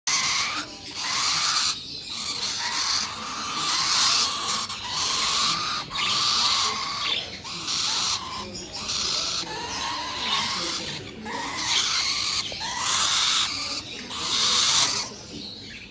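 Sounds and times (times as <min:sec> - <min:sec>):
parrot harsh rasping calls: 0:00.1 - 0:15.3.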